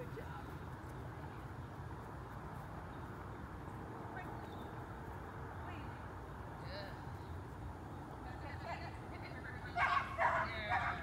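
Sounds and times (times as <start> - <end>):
dog barking: 9.8 - 11.0.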